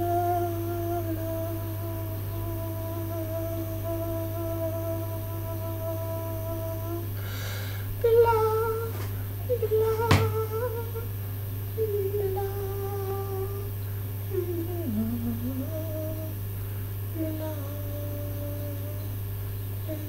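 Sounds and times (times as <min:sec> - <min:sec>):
person humming: 0:00.0 - 0:07.4, 0:08.0 - 0:11.1, 0:11.8 - 0:16.4, 0:17.1 - 0:19.2
breath in: 0:07.2 - 0:07.9.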